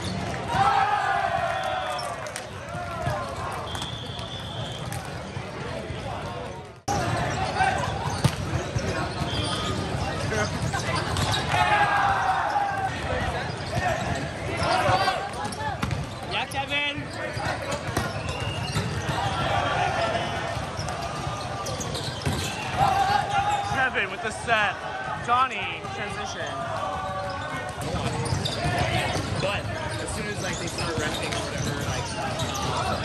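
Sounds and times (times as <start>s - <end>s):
sneakers squeaking on court floor: 0.0s - 24.2s, 25.1s - 33.0s
volleyballs struck and bouncing: 0.0s - 24.3s, 25.0s - 33.0s
many voices calling and chattering: 0.0s - 33.0s.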